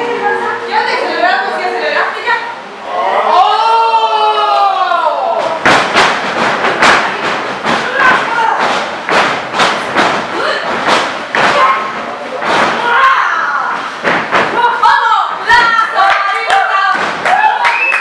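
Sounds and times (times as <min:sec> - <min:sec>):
wrestling thuds and slaps: 0:05.4 - 0:16.0, 0:16.9 - 0:17.5.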